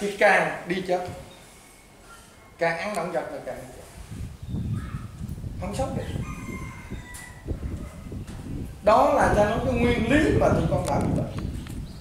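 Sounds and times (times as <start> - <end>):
drawn-out high bird call: 4.4 - 5.2.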